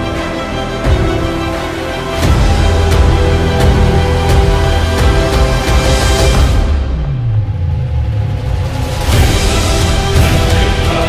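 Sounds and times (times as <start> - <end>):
steady bass drone: 0.0 - 11.0
deep cinematic rumble: 2.1 - 11.0.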